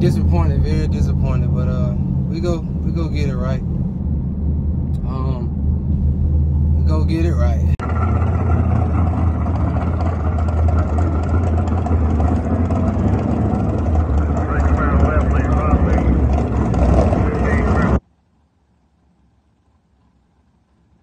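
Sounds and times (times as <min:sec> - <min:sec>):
car engine idling: 0:00.0 - 0:18.0
person speaking: 0:05.0 - 0:05.5.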